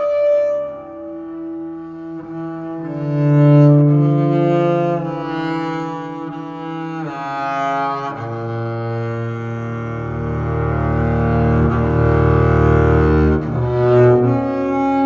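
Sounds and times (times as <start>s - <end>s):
bowed double bass: 0.0s - 15.0s.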